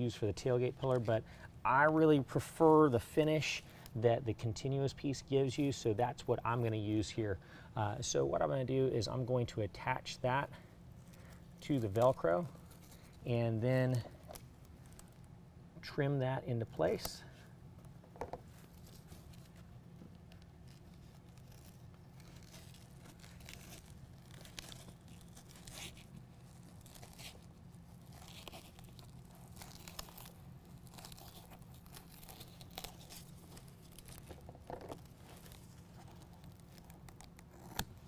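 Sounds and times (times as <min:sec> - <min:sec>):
steady low hum: 0:00.0 - 0:38.0
velcro strip rustling and tearing: 0:10.9 - 0:13.3, 0:18.4 - 0:38.0.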